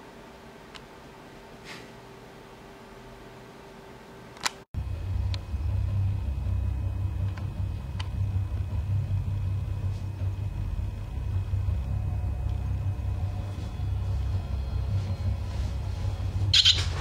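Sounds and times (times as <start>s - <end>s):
sharp click: 4.4s - 4.6s
steady low rumble: 4.8s - 17.0s.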